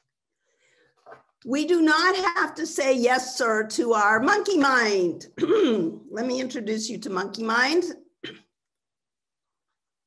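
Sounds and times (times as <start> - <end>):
woman clearing her throat: 5.4 - 6.0, 8.2 - 8.5.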